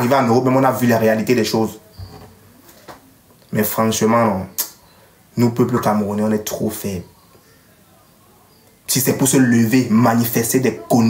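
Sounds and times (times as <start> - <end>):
man speaking: 0.0 - 1.8, 3.5 - 4.7, 5.4 - 7.2, 8.9 - 11.0
faint room hiss: 0.0 - 11.0.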